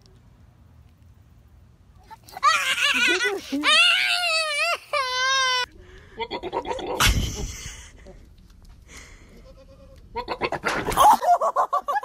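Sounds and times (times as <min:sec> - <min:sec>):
goat bleating: 0:09.3 - 0:10.6.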